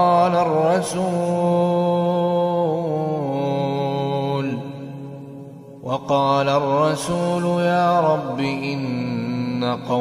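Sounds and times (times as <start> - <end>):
man chanting recitation: 0.0 - 5.2, 5.8 - 10.0.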